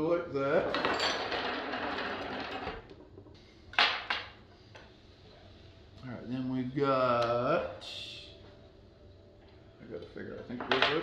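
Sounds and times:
metal parts rattling and scraping: 0.7 - 2.8.

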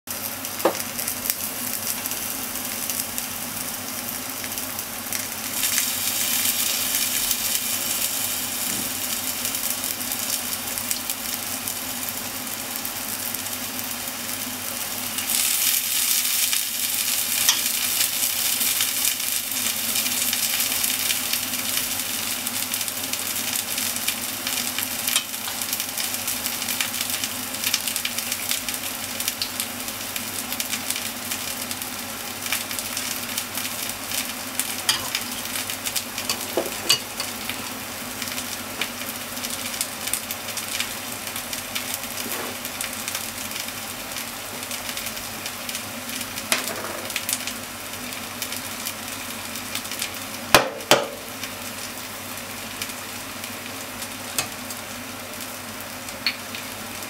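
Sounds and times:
food sizzling in oil: 0.1 - 57.0.

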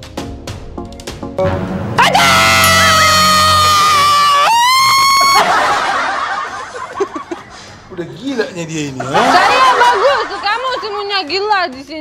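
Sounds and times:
high-pitched held cry: 2.0 - 5.4
people laughing: 5.0 - 11.3.

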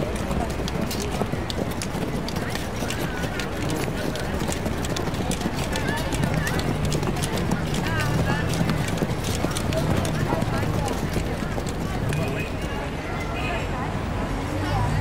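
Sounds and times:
horse hooves on hard street: 0.0 - 13.6
crowd murmur: 0.0 - 15.0.

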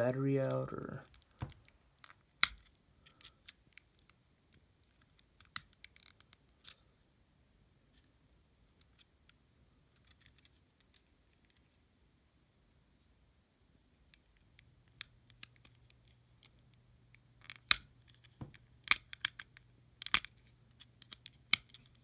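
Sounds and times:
small plastic clicks and scratches: 1.0 - 7.0, 7.9 - 11.8, 14.0 - 22.0.

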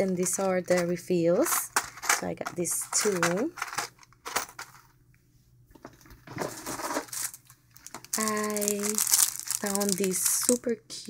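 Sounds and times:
plastic packaging crinkling: 6.4 - 11.0.

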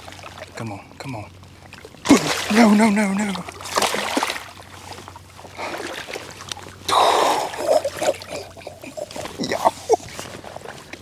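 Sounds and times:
shallow water splashing: 0.0 - 11.0.

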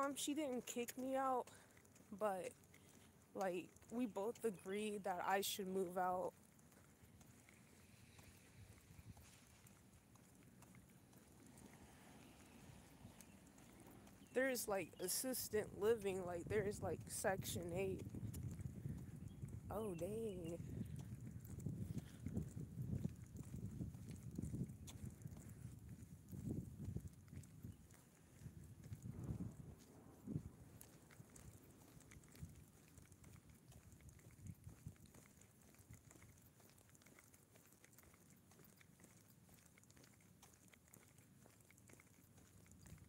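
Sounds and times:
footsteps on concrete: 6.3 - 14.3.

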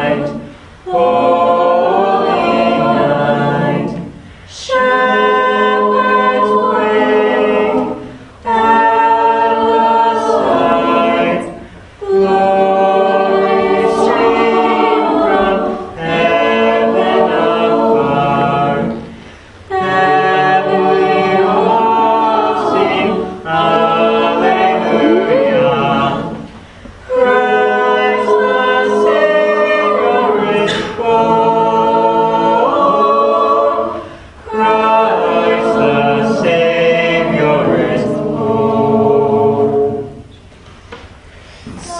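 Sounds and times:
a cappella group singing: 0.0 - 41.9.

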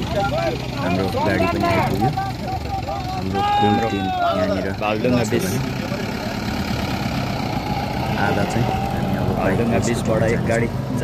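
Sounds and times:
pickup truck engine running: 0.0 - 11.0.

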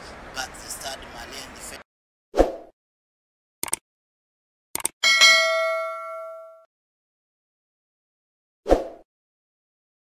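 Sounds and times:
notification bell ding: 5.0 - 6.7.

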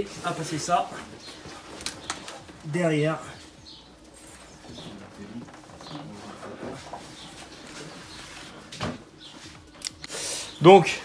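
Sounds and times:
handling and rustling: 0.0 - 9.8.

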